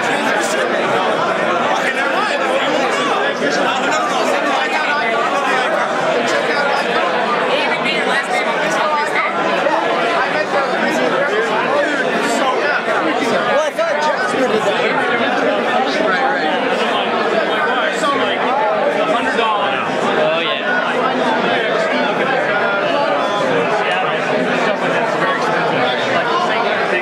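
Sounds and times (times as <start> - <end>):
crowd chatter: 0.0 - 27.0.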